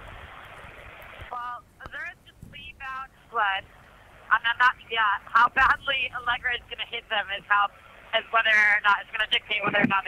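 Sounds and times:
person speaking over phone line: 0:04.3 - 0:10.0.

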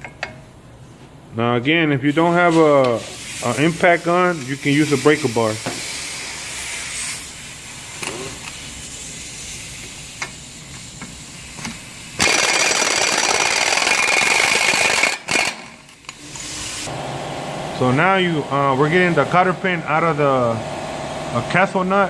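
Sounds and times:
impact gun spinning nut off: 0:12.2 - 0:16.1.

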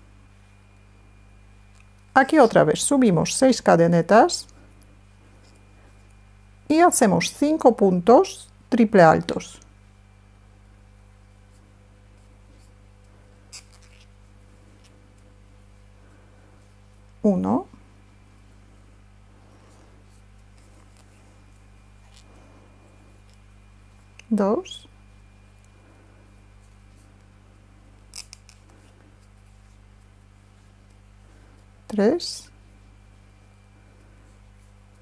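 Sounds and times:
steady low hum: 0:00.0 - 0:35.0
thread scratching through stitches: 0:13.5 - 0:14.2.

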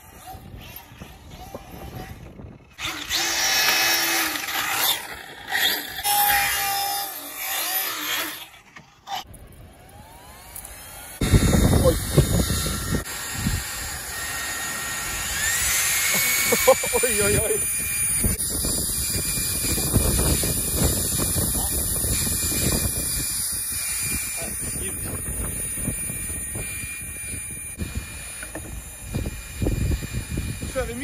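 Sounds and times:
electric motor whining: 0:00.0 - 0:31.0
loud rumble of rc car driving: 0:00.0 - 0:31.0.

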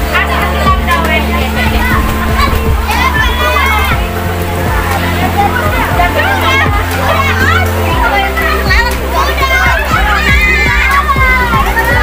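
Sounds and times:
children shouting and chattering: 0:00.0 - 0:12.0
music with a steady beat: 0:00.0 - 0:12.0.

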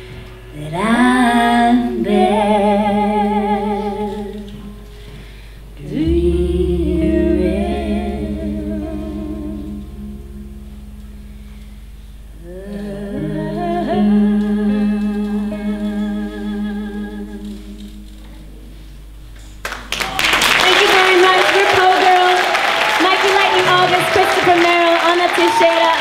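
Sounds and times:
low steady tone: 0:00.0 - 0:19.5
women singing in harmony: 0:00.6 - 0:04.7, 0:05.8 - 0:10.2, 0:12.4 - 0:18.0.

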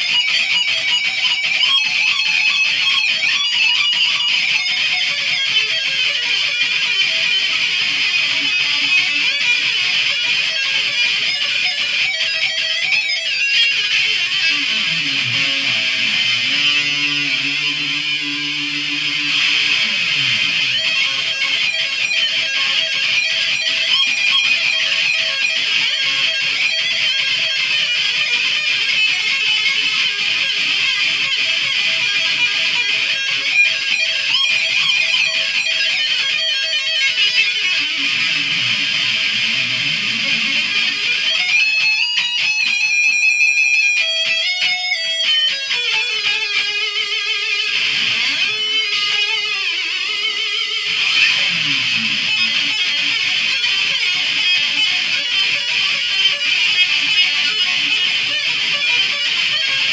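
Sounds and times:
electric guitar arpeggios: 0:00.0 - 0:59.9.

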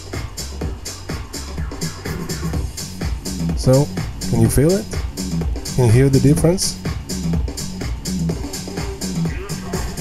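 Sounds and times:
house music with kick drum and hi-hat: 0:00.0 - 0:10.0.

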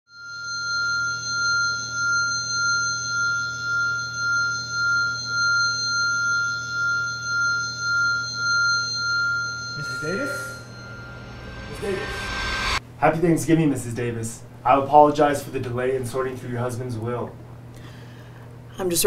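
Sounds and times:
high ringing tone: 0:00.1 - 0:12.8
low hum: 0:00.2 - 0:14.7.

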